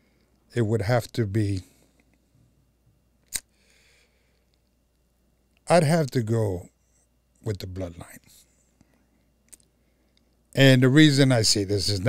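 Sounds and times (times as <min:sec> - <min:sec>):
man speaking: 0:00.5 - 0:01.7, 0:05.7 - 0:06.7, 0:07.4 - 0:08.4, 0:10.6 - 0:12.0
soft breath: 0:03.5 - 0:04.6.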